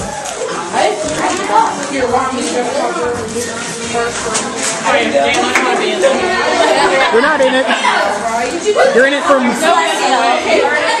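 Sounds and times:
teenagers chattering: 0:00.0 - 0:11.0.

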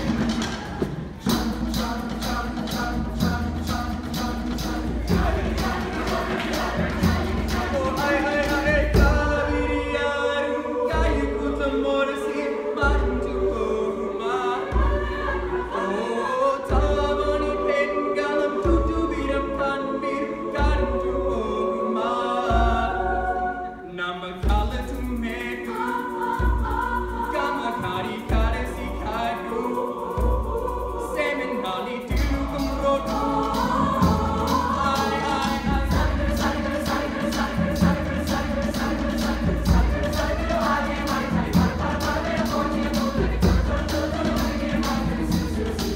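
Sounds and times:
low drum beat: 0:00.0 - 0:09.9, 0:32.0 - 0:45.9
choir singing gospel song: 0:00.0 - 0:45.9.

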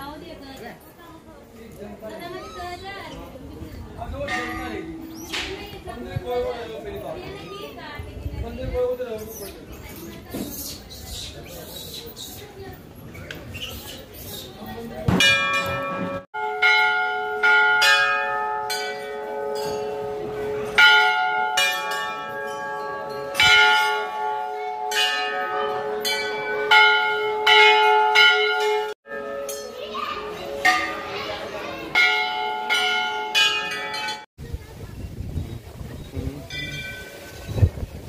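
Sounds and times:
temple bells ringing: 0:04.2 - 0:06.5, 0:15.2 - 0:34.3, 0:36.5 - 0:37.2.

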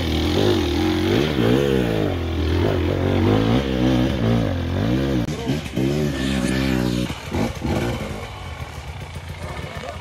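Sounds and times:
dirt bike engine: 0:00.0 - 0:10.0.

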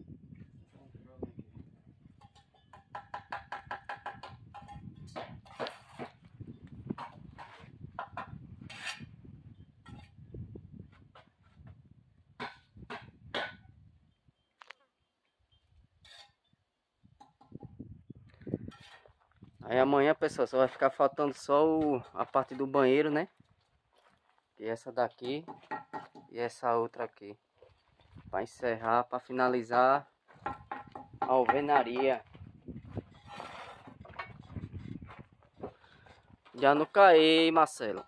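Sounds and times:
bricks knocking and scraping: 0:02.2 - 0:09.1, 0:25.4 - 0:26.3, 0:30.4 - 0:32.4, 0:33.0 - 0:36.6.

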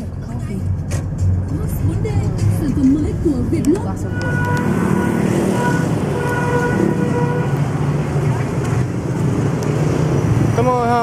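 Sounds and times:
traffic engines rumbling: 0:00.0 - 0:11.0
vehicle horn: 0:04.0 - 0:07.8.

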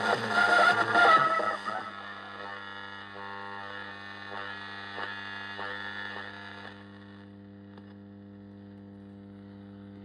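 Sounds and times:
radio static hiss: 0:00.0 - 0:10.0
steady hum: 0:00.0 - 0:10.0.

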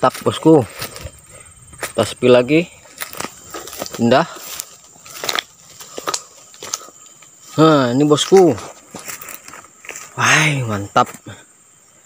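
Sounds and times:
footsteps crunching dry leaves: 0:00.0 - 0:11.2
palm fronds rustling: 0:00.0 - 0:11.4.

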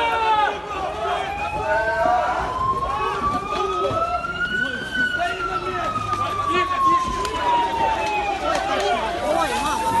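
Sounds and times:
people shouting: 0:00.0 - 0:04.3
police siren wailing: 0:00.0 - 0:10.0.

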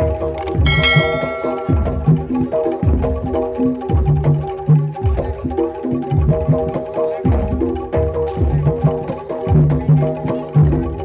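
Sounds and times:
bright metallic strike ringing: 0:00.7 - 0:02.3
metallophone notes: 0:00.7 - 0:02.4.

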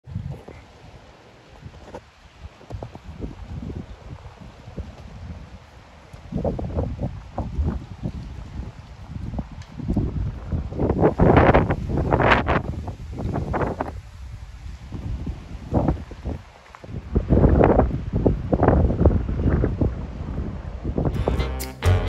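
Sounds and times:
gusty wind buffeting microphone: 0:00.0 - 0:21.2
music: 0:21.1 - 0:22.0.

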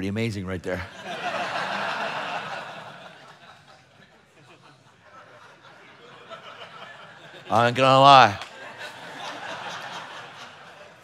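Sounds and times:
laughter: 0:00.8 - 0:07.6, 0:08.4 - 0:11.0.

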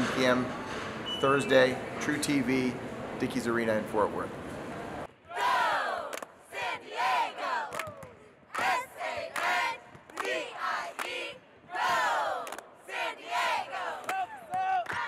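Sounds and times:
hand claps: 0:07.7 - 0:09.5, 0:10.1 - 0:10.4, 0:12.4 - 0:12.7, 0:14.0 - 0:15.0.

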